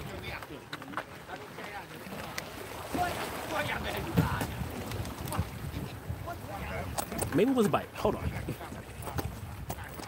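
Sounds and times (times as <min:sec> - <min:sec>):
steady wind: 0:00.0 - 0:10.0
waves lapping against rocks: 0:00.0 - 0:10.0.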